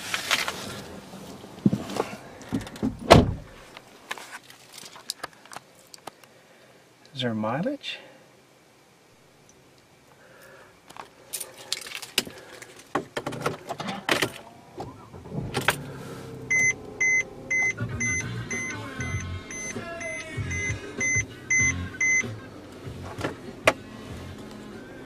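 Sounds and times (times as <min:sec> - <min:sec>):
short electronic beeps: 0:16.5 - 0:22.3.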